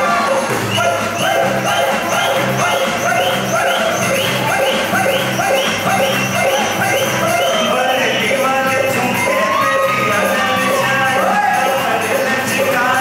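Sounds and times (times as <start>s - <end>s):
live band playing: 0.0s - 13.0s
person singing: 0.0s - 13.0s.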